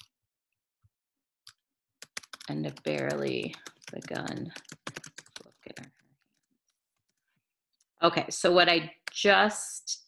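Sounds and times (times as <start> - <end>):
faint keyboard typing clicks: 1.5 - 6.0.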